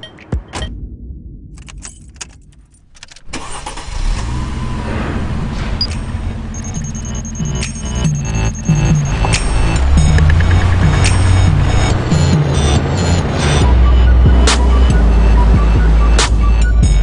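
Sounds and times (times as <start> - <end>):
car engine starting and running: 0.0 - 17.0
clicks: 6.7 - 11.6
loud music: 6.9 - 17.0.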